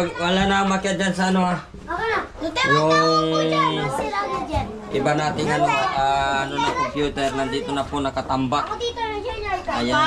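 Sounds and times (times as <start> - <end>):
children talking and playing: 0.0 - 10.0.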